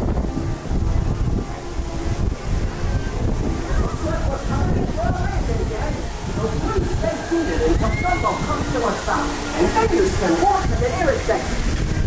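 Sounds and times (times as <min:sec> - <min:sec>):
carousel ride rumbling: 0:00.0 - 0:12.0
voices and chatter: 0:00.7 - 0:12.0.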